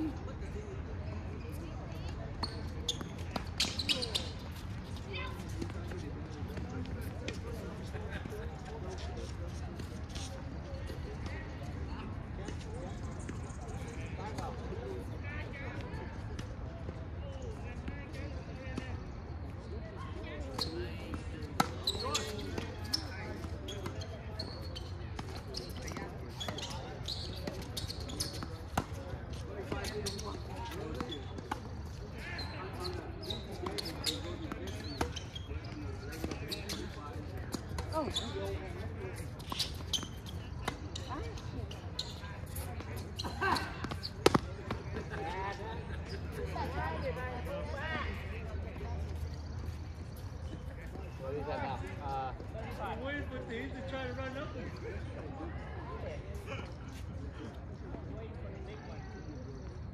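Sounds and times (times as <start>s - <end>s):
voices talking: 0.0s - 59.9s
tennis balls struck and bouncing: 43.6s - 45.2s.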